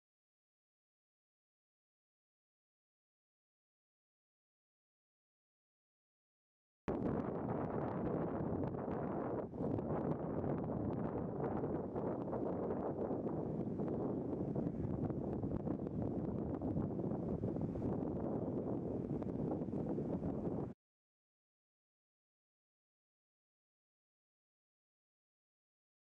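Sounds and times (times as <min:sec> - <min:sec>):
wind on microphone: 0:06.9 - 0:20.8.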